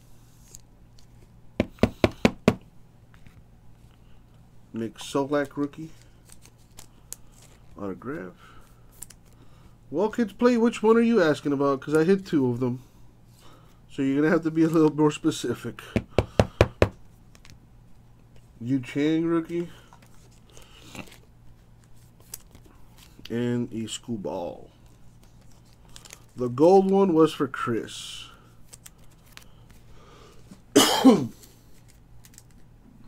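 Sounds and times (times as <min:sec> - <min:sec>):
cards tapping on tabletop: 0:01.6 - 0:02.6.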